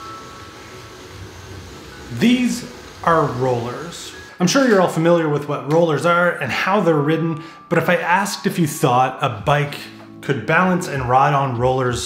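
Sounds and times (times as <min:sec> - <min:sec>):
bicycle tyres whirring on rollers: 0:00.0 - 0:04.4.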